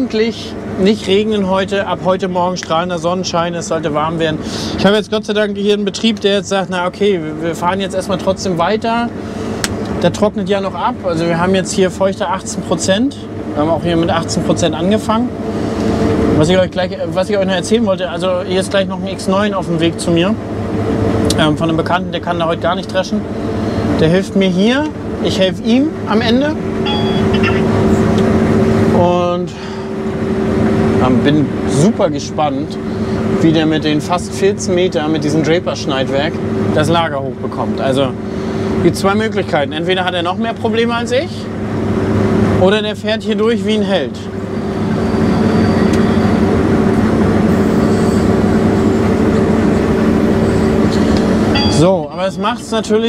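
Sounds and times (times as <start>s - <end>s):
combine harvester drone in cab: 0.0s - 53.0s.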